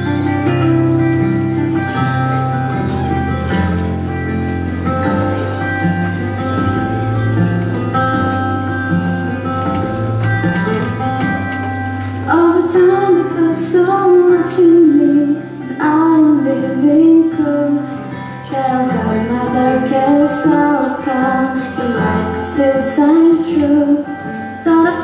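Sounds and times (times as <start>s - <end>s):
instrumental accompaniment: 0.0s - 25.0s
woman singing: 12.3s - 25.0s.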